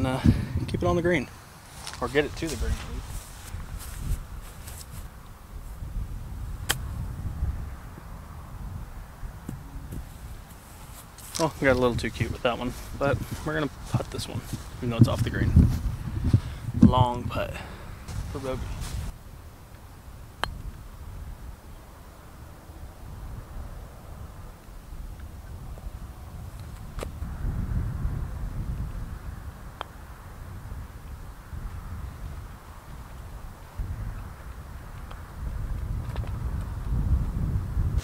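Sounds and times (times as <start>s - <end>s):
wind buffeting microphone: 0.0s - 19.4s, 20.1s - 38.0s.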